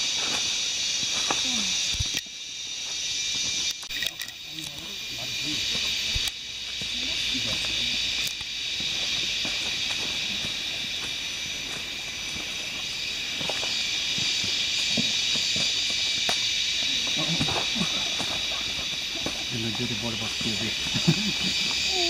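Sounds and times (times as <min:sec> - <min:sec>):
insects buzzing: 0:00.0 - 0:22.0.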